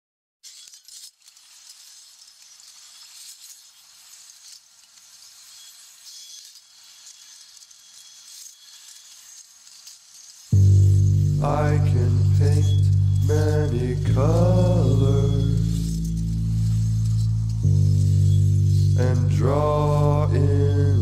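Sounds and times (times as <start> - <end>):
faint crackling and hiss: 0.4 - 21.0.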